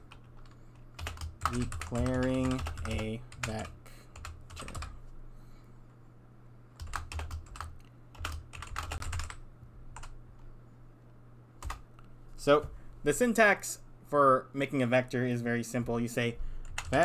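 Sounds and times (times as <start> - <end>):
computer keyboard typing: 0.0 - 5.0, 6.8 - 9.4, 10.0 - 10.2, 11.6 - 11.8, 16.6 - 17.0
steady low hum: 0.0 - 17.0.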